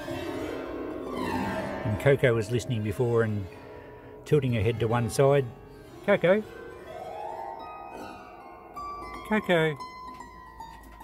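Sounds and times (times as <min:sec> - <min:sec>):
piano strings ringing like a harp: 0:00.0 - 0:11.0.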